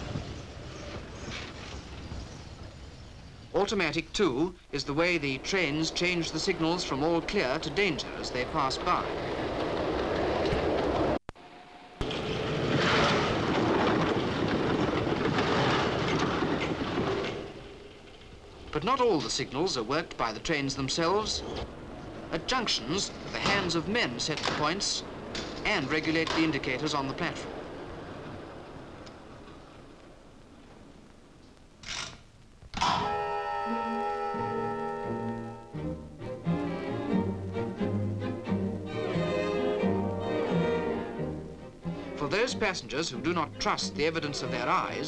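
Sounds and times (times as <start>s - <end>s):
electric train rumbling on track: 0.0s - 32.2s, 33.0s - 45.0s
mechanical clacks: 12.0s - 19.4s
orchestral music with strings: 33.1s - 45.0s.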